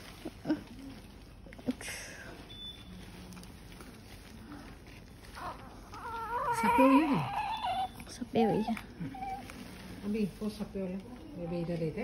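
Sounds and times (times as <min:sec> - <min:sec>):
newborn baby crying: 0:05.4 - 0:09.5.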